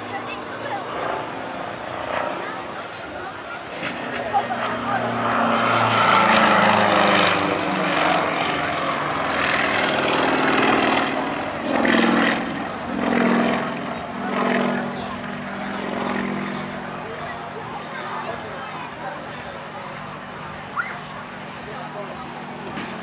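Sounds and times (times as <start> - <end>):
propeller plane engine: 0.0 - 23.0.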